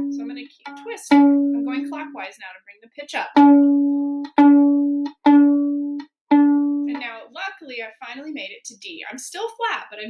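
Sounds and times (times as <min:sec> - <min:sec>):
violin string plucked: 0:00.0 - 0:02.3, 0:03.2 - 0:07.2.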